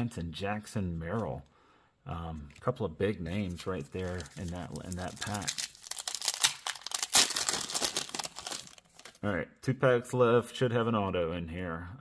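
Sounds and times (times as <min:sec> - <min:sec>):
foil wrapper tearing and crinkling: 0:03.8 - 0:09.2.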